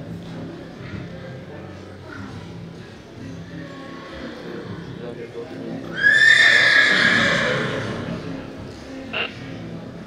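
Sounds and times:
horse whinnying: 0:05.9 - 0:08.1.

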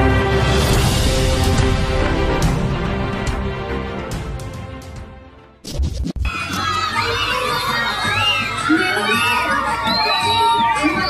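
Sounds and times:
children shouting and cheering: 0:06.3 - 0:11.0.

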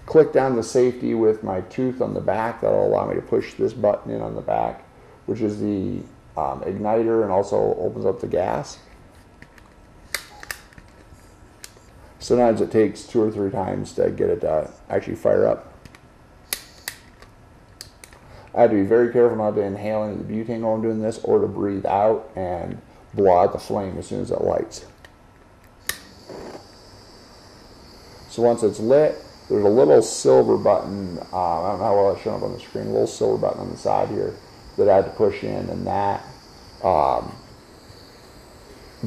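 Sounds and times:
butane torch flame hissing: 0:00.0 - 0:15.8, 0:16.4 - 0:25.1, 0:25.7 - 0:39.0
torch igniter button clicking: 0:15.8 - 0:18.2, 0:25.0 - 0:26.6.

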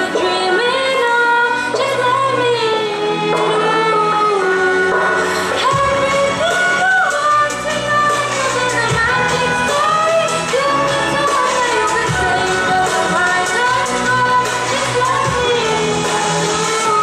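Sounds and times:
violin accompaniment: 0:00.0 - 0:17.0
woman singing ornamented melody: 0:00.0 - 0:17.0.

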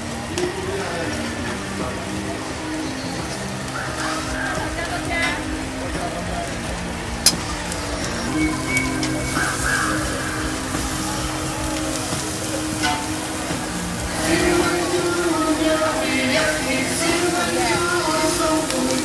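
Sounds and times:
voices: 0:00.0 - 0:19.0.

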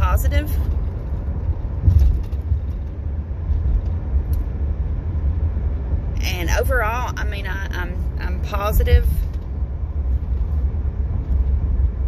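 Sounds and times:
truck engine rumble inside cab: 0:00.0 - 0:12.0.

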